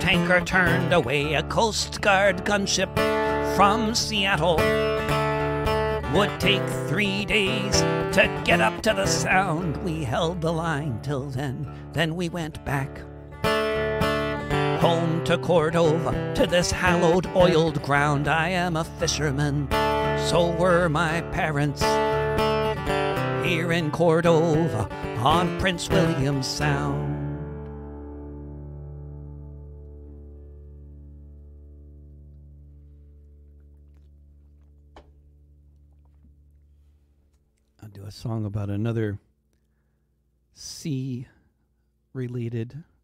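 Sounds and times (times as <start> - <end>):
person singing: 0.0 - 5.4, 6.0 - 13.1, 14.7 - 22.2, 23.4 - 27.7
acoustic guitar strumming: 0.0 - 33.9.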